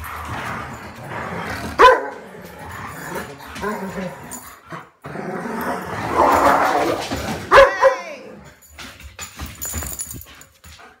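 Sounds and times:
dogs growling: 0:00.0 - 0:07.5
dog barking: 0:01.8 - 0:02.2, 0:07.5 - 0:08.1.

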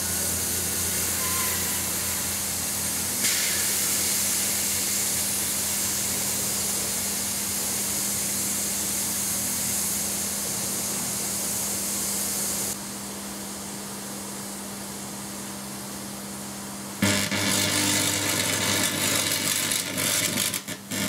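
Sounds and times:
mains transformer hum: 0:12.5 - 0:21.0
batteries venting with loud hiss: 0:17.0 - 0:21.0.

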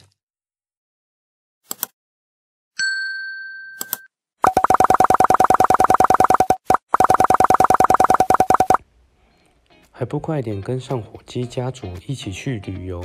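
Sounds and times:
click: 0:01.7 - 0:02.0.

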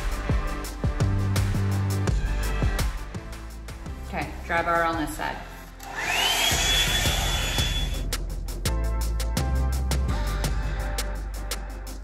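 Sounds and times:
background music with steady beat: 0:00.0 - 0:12.0
blow-dryer whine and air rush: 0:05.8 - 0:08.0.

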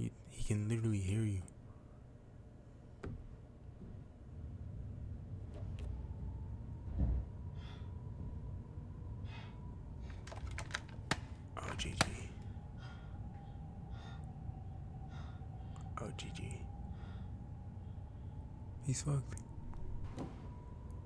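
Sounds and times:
faint steady tone: 0:11.2 - 0:21.0
frightened breathing: 0:12.3 - 0:16.0, 0:16.7 - 0:18.6.

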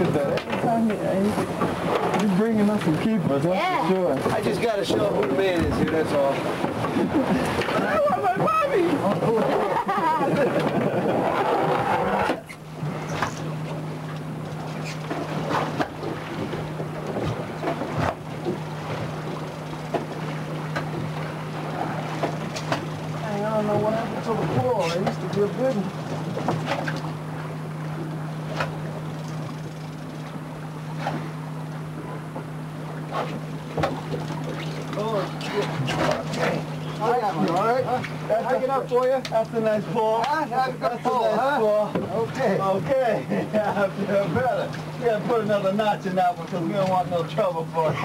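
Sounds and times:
voices: 0:00.0 - 0:12.5, 0:21.6 - 0:26.1, 0:34.8 - 0:48.0
boat engine idling drone: 0:00.0 - 0:48.0
laughter: 0:09.0 - 0:11.4.

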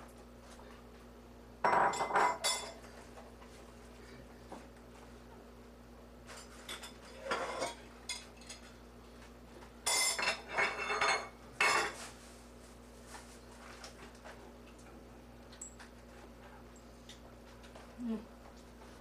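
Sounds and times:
dishes and utensils clinking: 0:01.6 - 0:02.9, 0:06.3 - 0:08.8, 0:09.8 - 0:12.0.

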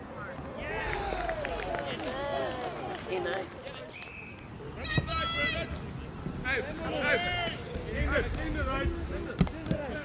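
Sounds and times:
people shouting and calling: 0:00.6 - 0:02.9, 0:04.8 - 0:05.8, 0:06.4 - 0:10.0.

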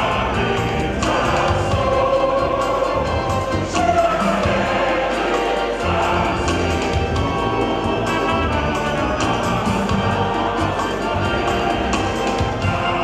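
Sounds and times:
choir singing: 0:00.0 - 0:13.0
instrumental accompaniment: 0:00.0 - 0:13.0.

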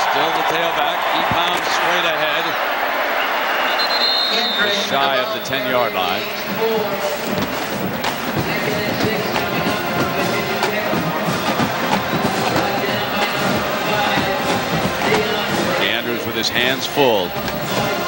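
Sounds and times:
crowd noise: 0:00.0 - 0:18.0
music in a stadium: 0:00.0 - 0:18.0.

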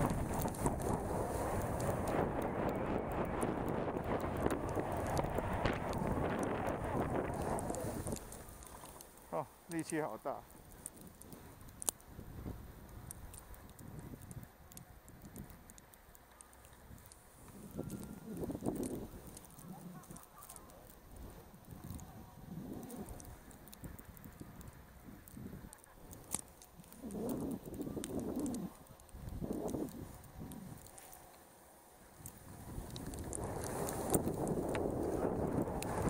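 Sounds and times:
skis sliding through powder snow: 0:00.0 - 0:14.2, 0:16.4 - 0:36.0.

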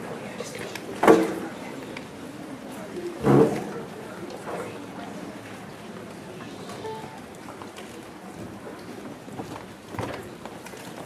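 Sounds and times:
low background hum of hall: 0:00.0 - 0:11.0.

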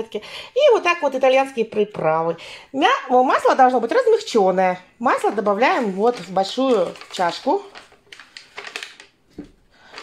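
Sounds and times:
paper wrapper crinkling: 0:05.4 - 0:10.0.

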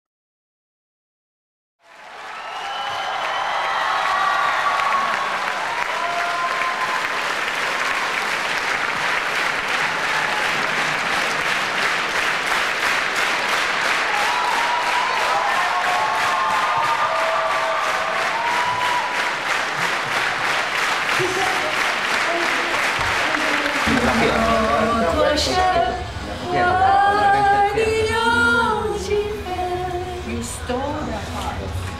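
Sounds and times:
audience applauding: 0:01.8 - 0:25.8.

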